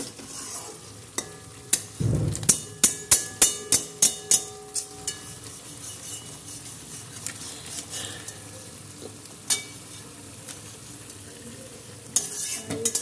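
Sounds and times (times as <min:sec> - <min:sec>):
food sizzling: 0:00.0 - 0:13.0
spatula clinking on frying pan: 0:01.2 - 0:05.4, 0:09.5 - 0:09.8, 0:12.2 - 0:13.0.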